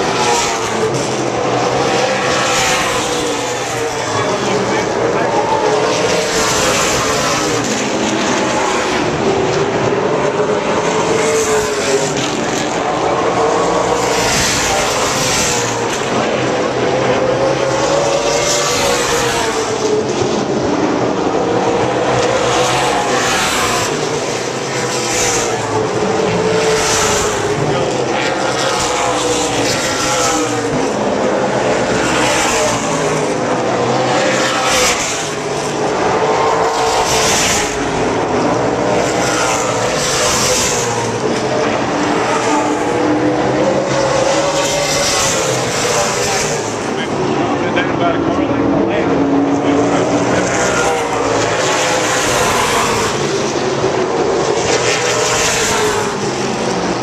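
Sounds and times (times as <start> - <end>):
race car engines passing: 0.0 - 57.0.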